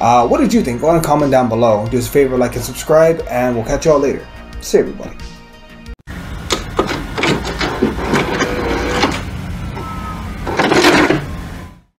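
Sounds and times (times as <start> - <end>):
steady hum: 6.1 - 11.9
mechanical clatter: 6.4 - 9.8, 10.4 - 11.5
tape mechanism clicks and clunks: 6.4 - 11.4.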